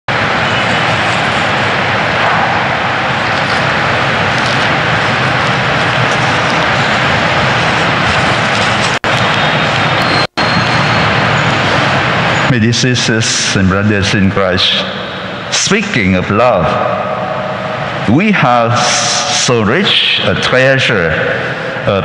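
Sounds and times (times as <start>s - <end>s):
loud steady rushing noise: 0.1s - 22.0s.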